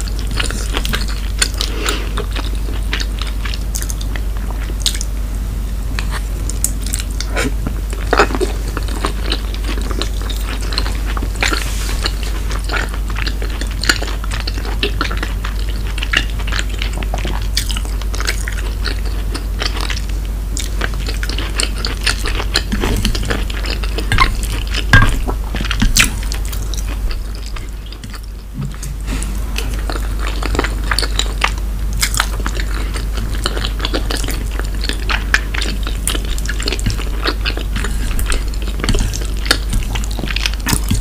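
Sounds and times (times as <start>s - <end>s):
wet chewing and mouth smacks: 0.0s - 5.1s, 6.0s - 41.0s
steady low hum: 0.0s - 41.0s.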